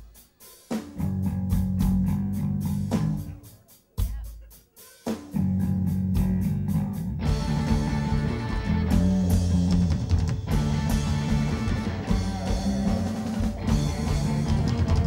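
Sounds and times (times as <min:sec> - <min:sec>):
rock band playing: 0:00.0 - 0:15.0
heavy bass guitar riff: 0:01.0 - 0:03.4, 0:05.4 - 0:15.0.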